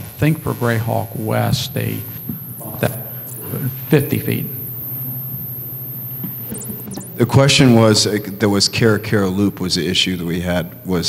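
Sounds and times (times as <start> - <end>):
faint hiss: 0.1 - 10.9
low electrical hum: 0.1 - 11.0
high-pitched whine: 0.5 - 11.0.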